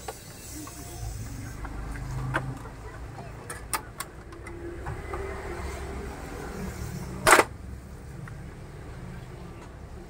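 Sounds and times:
loud plastic clack: 7.2 - 7.6.

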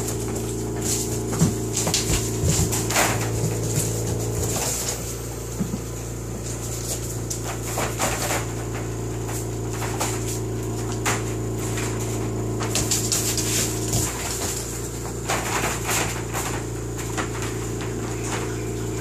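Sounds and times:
knocks against wire crate: 0.0 - 6.0, 6.9 - 19.0
dog claws clicking on wood floor: 0.0 - 19.0
low machine hum: 0.0 - 19.0.

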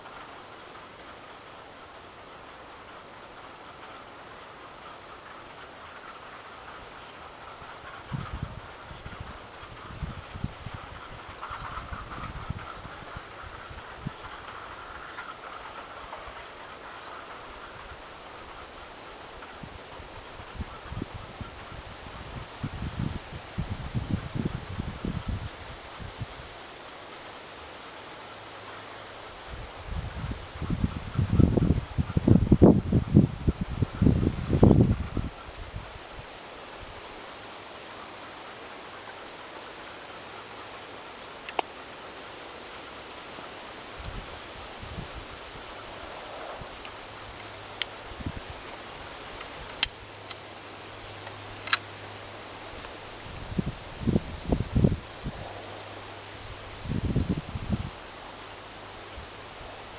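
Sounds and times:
steady outdoor hiss: 0.0 - 59.9
wind buffeting microphone: 3.7 - 26.6, 29.2 - 37.1, 43.8 - 59.9.

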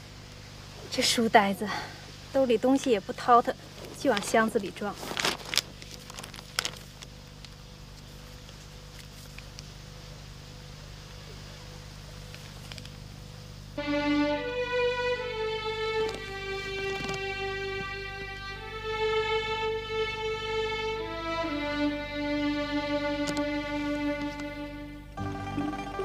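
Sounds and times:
low steady background: 0.0 - 26.0
handling sounds: 4.0 - 9.5
slow sad violin melody: 13.8 - 26.0.

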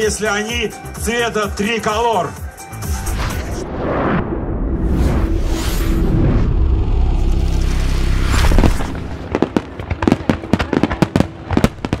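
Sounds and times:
fireworks rumble: 7.0 - 12.0
fireworks cracking and popping: 8.3 - 12.0.

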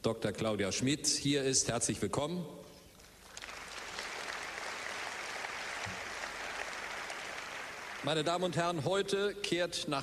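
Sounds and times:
large audience applauding: 3.2 - 8.6.

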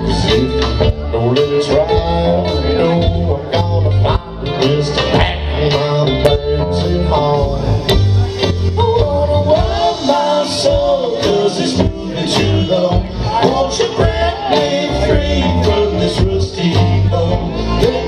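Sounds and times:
electric bass: 0.0 - 18.0.

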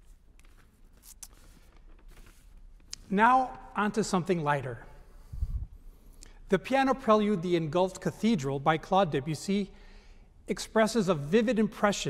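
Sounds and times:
paper rustling: 0.0 - 3.0.

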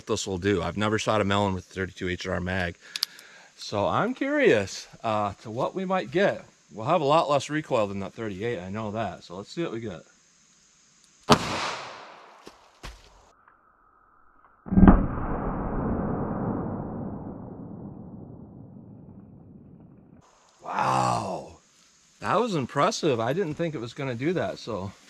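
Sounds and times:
revolver shot: 11.3 - 12.3, 14.7 - 20.1
slowed bang with deep rumble: 14.7 - 20.2
vocal exclamation: 20.6 - 21.6.

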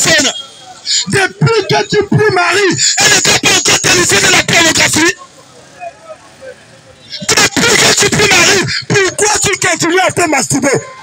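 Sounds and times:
man preaching loudly: 0.0 - 5.2, 7.2 - 11.0.

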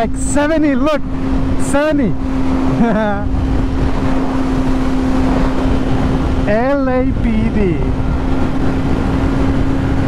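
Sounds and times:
motorcycle engine cruising: 0.0 - 10.0
wind and road rumble: 0.0 - 10.0.

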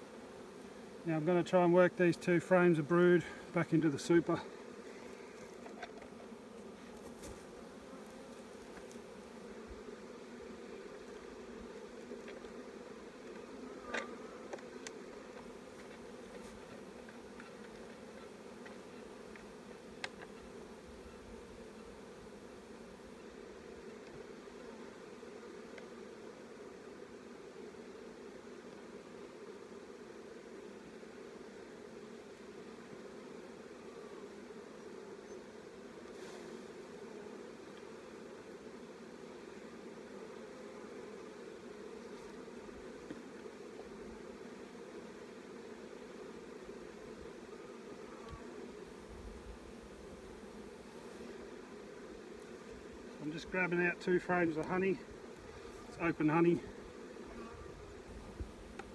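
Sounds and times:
honeybees buzzing: 0.0 - 58.9.

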